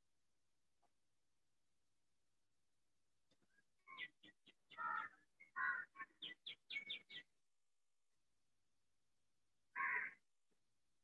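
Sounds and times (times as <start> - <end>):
longer bird calls: 3.4 - 7.3
birds chirping: 3.8 - 7.3.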